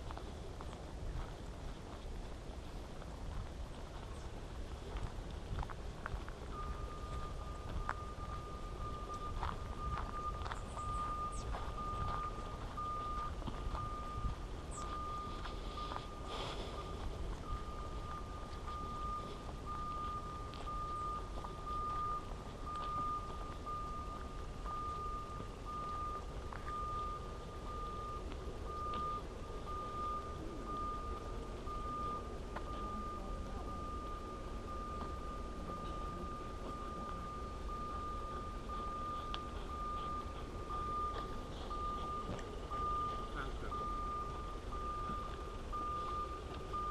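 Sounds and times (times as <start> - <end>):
wind rumble on microphone: 0.0 - 16.0
high electronic beep: 6.5 - 46.9.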